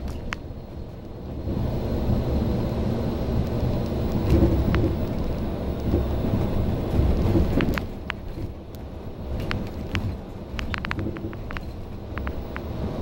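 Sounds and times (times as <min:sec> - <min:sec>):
bus body rattles: 0:00.0 - 0:02.3, 0:03.3 - 0:12.5
bus diesel engine rumbling: 0:00.0 - 0:13.0.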